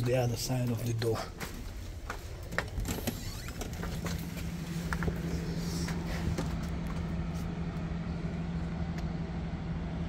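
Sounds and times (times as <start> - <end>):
low rumble: 0.0 - 10.0
steady low hum: 0.0 - 10.0.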